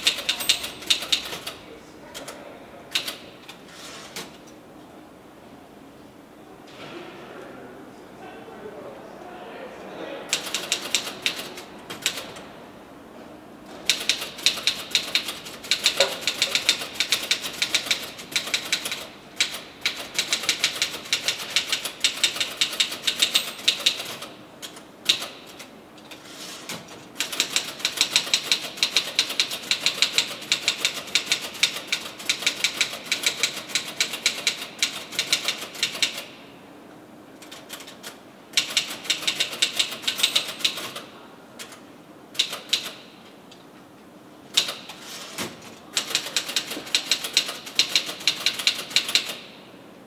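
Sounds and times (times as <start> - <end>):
fast typing on keyboard: 0.0 - 1.6, 10.3 - 12.3, 13.8 - 24.3, 27.2 - 36.3, 37.4 - 41.0, 42.4 - 43.0, 46.0 - 49.4.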